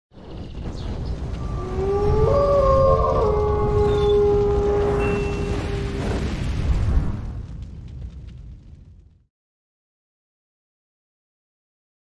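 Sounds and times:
wolf howling: 1.4 - 6.3.

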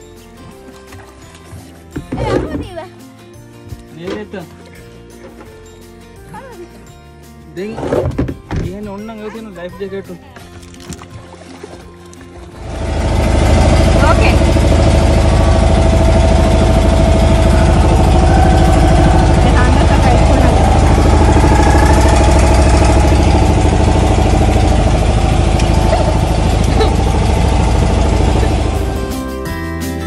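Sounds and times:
boat engine rumbling: 10.4 - 29.6.

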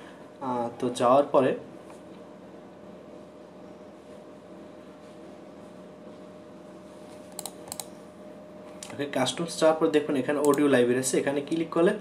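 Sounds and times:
faint electrical hum: 0.0 - 12.0
computer mouse clicks: 7.3 - 7.9, 10.4 - 10.6.

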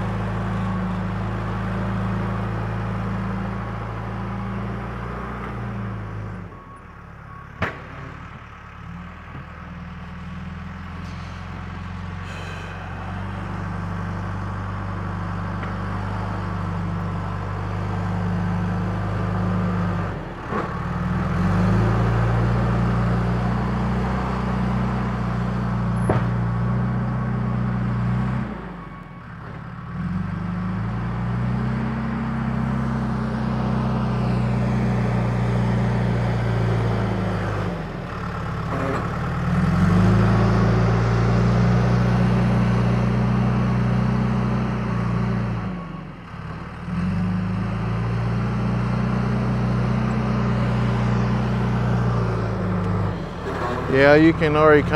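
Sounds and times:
loader diesel engine working: 0.0 - 54.9.

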